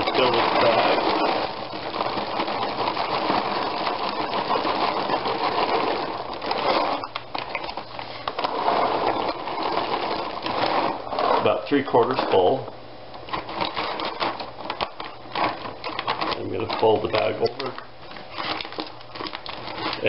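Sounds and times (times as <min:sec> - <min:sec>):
dog kibble pouring into a bag: 0:00.0 - 0:12.6, 0:13.3 - 0:20.0.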